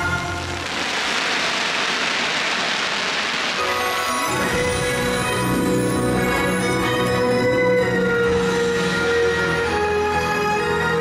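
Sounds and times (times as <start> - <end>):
show music: 3.5 - 11.0.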